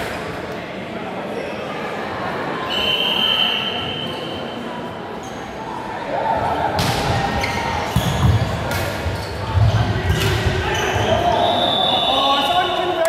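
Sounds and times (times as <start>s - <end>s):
volleyball hits echoing: 6.6s - 11.2s.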